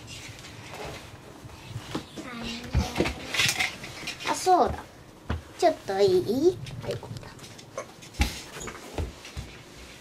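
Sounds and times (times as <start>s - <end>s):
rustling and handling noises: 0.0s - 10.0s.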